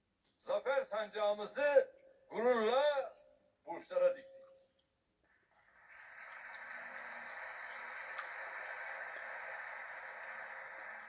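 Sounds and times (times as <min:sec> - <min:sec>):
audience applauding: 0:05.6 - 0:11.0.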